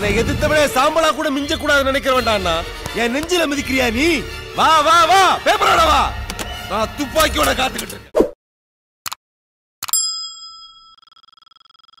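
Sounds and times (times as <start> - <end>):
metallic bell chime: 10.0 - 11.2.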